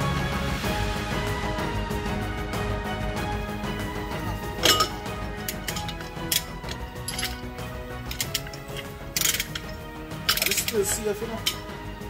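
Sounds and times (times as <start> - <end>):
background music: 0.0 - 12.0
metal tools clinking and knocking: 4.5 - 12.0.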